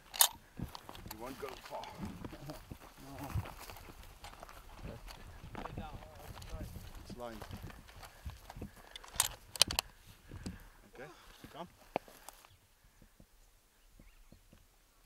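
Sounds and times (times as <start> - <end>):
rifle bolt clicking: 0.1 - 1.2, 8.9 - 9.9.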